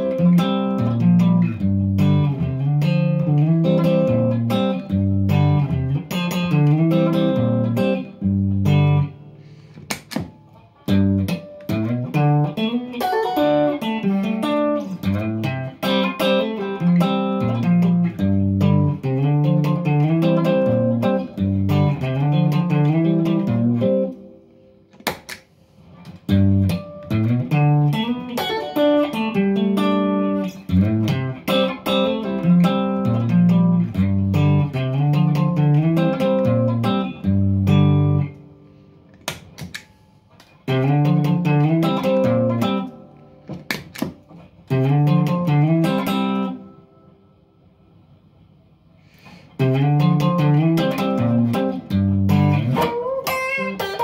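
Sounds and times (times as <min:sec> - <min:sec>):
overdriven electric guitar: 0:00.0 - 0:47.2, 0:49.1 - 0:54.0.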